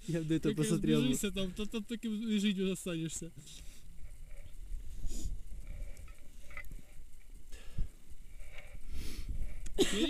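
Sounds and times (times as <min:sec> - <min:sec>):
wind on microphone: 0:03.9 - 0:09.8.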